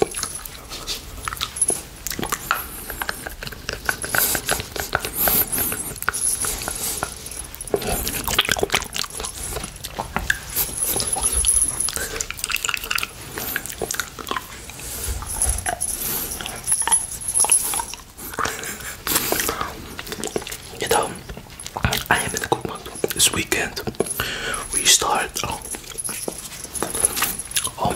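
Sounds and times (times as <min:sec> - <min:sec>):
wet mouth sounds licking candy: 0:00.0 - 0:27.9.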